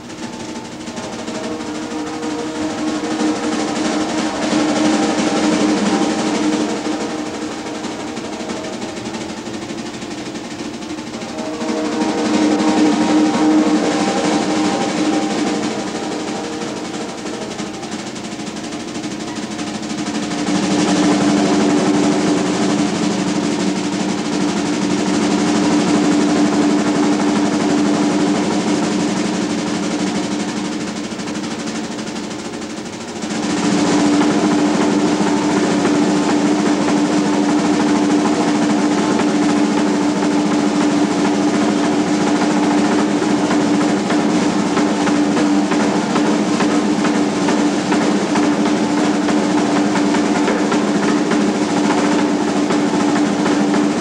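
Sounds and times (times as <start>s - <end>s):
jazz drum solo: 0.0s - 54.0s.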